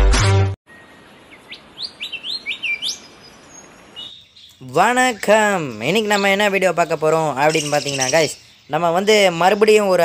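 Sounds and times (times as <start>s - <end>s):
budgerigars chirping: 1.0s - 10.0s.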